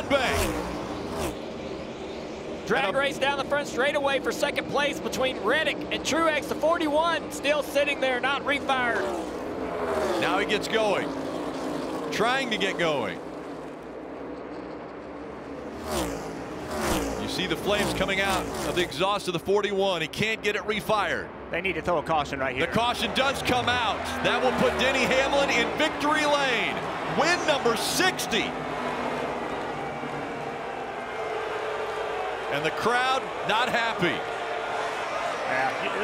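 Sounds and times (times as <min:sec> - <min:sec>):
race cars passing: 0:00.0 - 0:36.0
crowd booing: 0:22.6 - 0:36.0.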